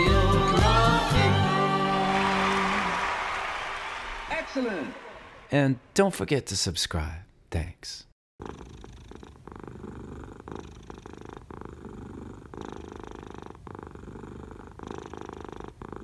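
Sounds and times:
cat purring: 8.4s - 16.0s.

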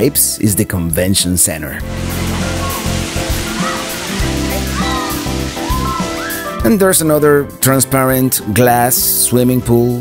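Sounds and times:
background music: 0.0s - 10.0s
fountain jets hissing and splashing: 1.8s - 7.1s
voices calling out: 1.9s - 6.7s.

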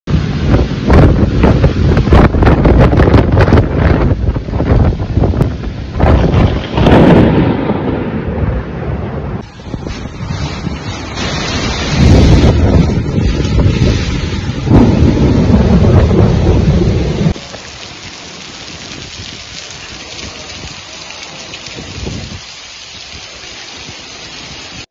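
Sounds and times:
heavy rain and hail: 0.1s - 24.9s
rain hiss: 9.4s - 24.9s.

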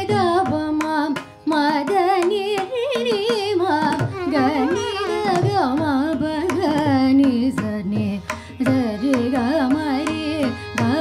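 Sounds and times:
violin: 0.0s - 11.0s
female voice singing: 1.6s - 11.0s
tanpura drone: 4.1s - 5.6s.

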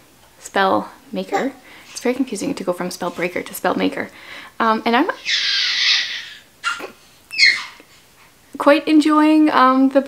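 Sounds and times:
baby squealing: 5.2s - 7.9s.

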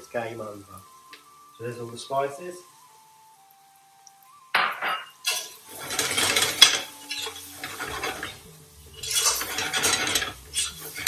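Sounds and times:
spoon scraping and clinking in pot: 5.0s - 11.0s.

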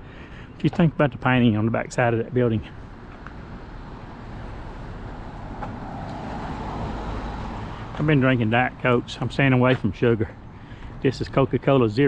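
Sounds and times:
car passing: 2.8s - 10.7s.

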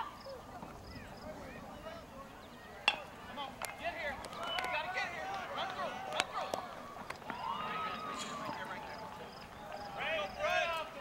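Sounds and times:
baseball bat cracking ball: 2.8s - 7.4s
spectators shouting and cheering: 3.9s - 11.0s.

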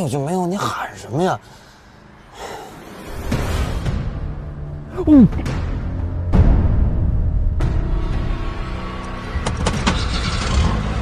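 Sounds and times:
car engine running: 7.4s - 11.0s.

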